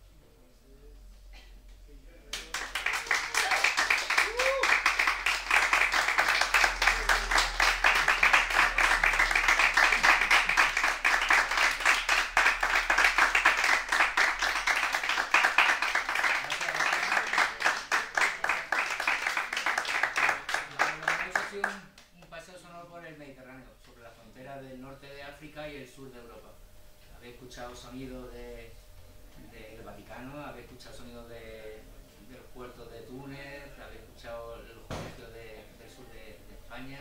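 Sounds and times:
audience applauding: 2.3 - 21.8.

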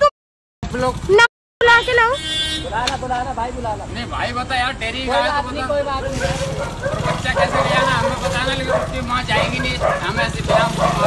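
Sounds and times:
voices arguing: 1.0 - 11.0
short car horn toot: 1.7 - 2.7.

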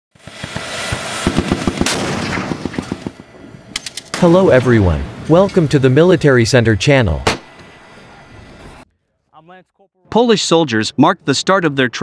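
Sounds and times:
machine-gun fire: 0.2 - 4.4
continuous rumbling noise: 0.2 - 8.9.

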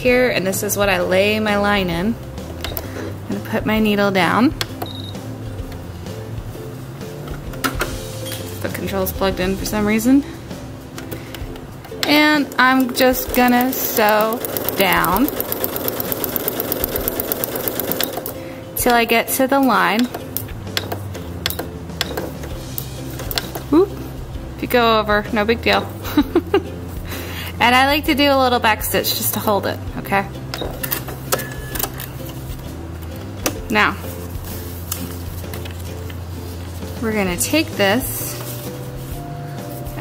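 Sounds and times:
background music: 0.0 - 40.0
sewing machine motor whirring: 13.2 - 18.4.

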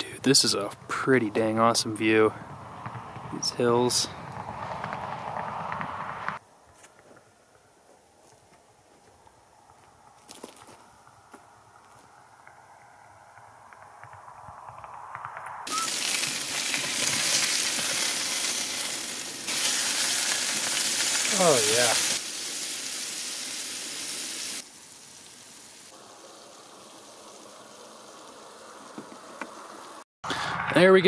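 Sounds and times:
outdoor noise: 0.0 - 31.0
burgers sizzling in frying pan: 15.7 - 30.0.

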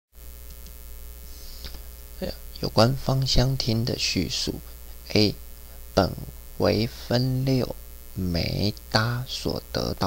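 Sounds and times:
electrical mains hum: 0.2 - 10.0.

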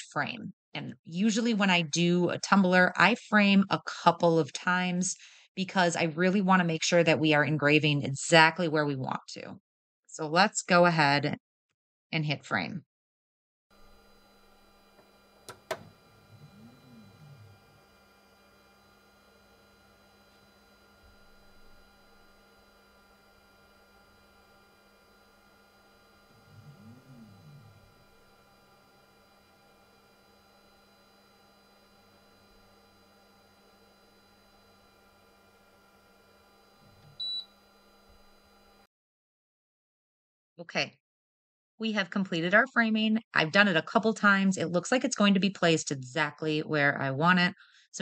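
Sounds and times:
laser engraver humming: 13.7 - 38.9
stepper motor whine: 13.7 - 38.9.

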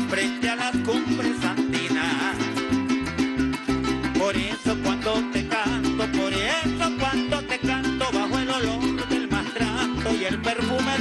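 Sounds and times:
man singing into a microphone: 0.0 - 2.8, 3.9 - 11.0.

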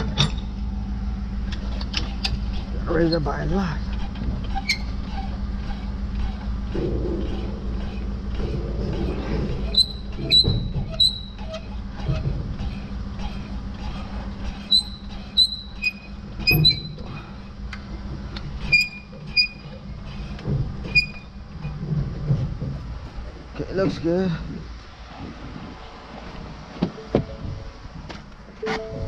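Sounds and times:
steady low hum: 0.0 - 29.0
jack crank squeaking: 1.5 - 24.0.

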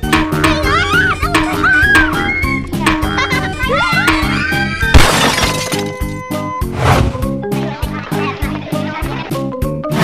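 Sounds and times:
background music with beat: 0.0 - 4.8
glass shattering crash: 4.9 - 6.2.

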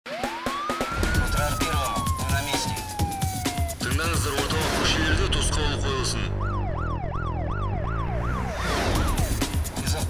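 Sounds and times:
siren wail: 0.1 - 9.4.

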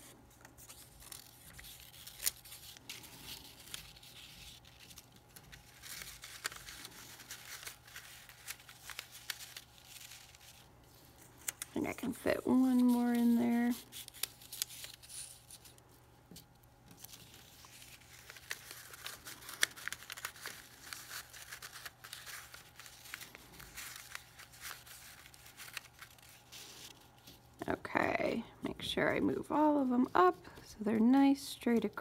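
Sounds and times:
paper rustling and crinkling: 0.0 - 28.1
paper edges clicking: 16.4 - 26.7.

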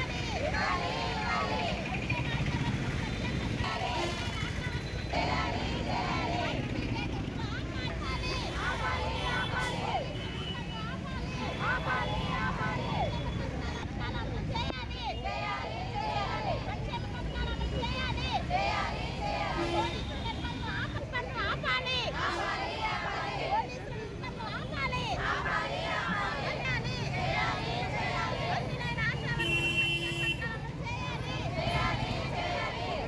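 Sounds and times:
low rumble of passing traffic: 0.0 - 33.0
women chanting slogans: 0.0 - 33.0
women talking: 0.0 - 33.0.

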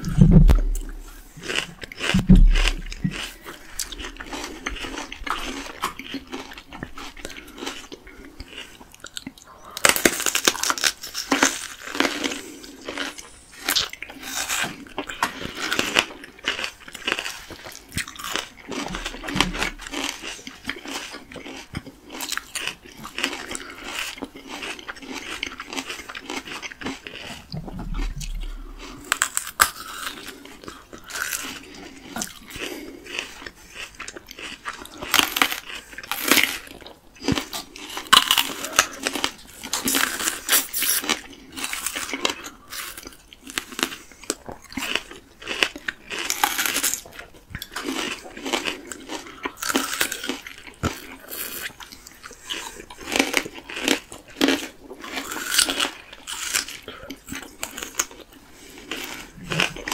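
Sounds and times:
crunching bites into plums: 0.0 - 7.9
wet chewing: 0.0 - 59.9.

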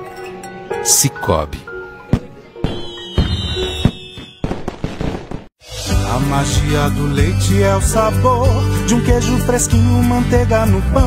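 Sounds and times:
background music: 0.0 - 4.5, 5.6 - 11.0
fireworks bangs: 2.2 - 5.6.

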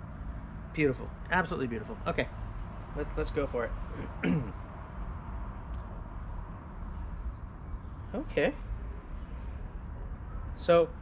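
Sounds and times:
faint high bird chirps: 6.2 - 11.0.

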